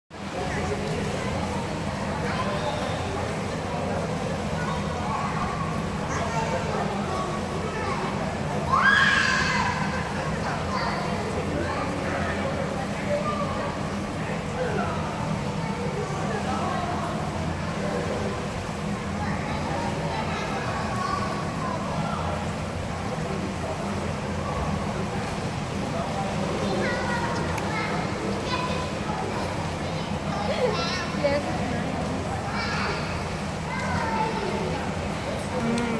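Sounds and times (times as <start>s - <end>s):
indistinct voices of adults and children: 0.1s - 35.9s
indistinct voices: 35.4s - 35.9s.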